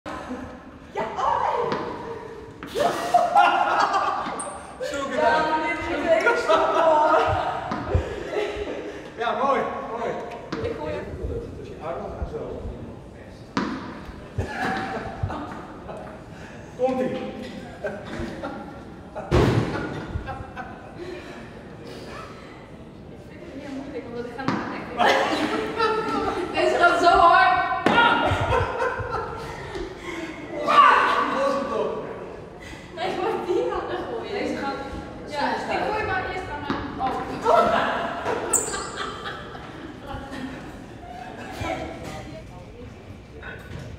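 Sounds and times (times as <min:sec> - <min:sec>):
voices talking in echoing hall: 0:00.1 - 0:43.9
loud thud: 0:19.3 - 0:20.0.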